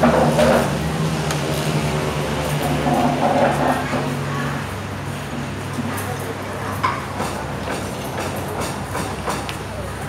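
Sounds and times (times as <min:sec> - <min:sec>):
background chatter: 0:02.7 - 0:10.0.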